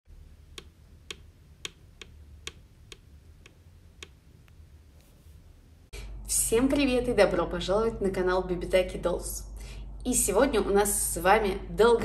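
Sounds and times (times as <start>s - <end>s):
low steady hum: 0.1s - 12.0s.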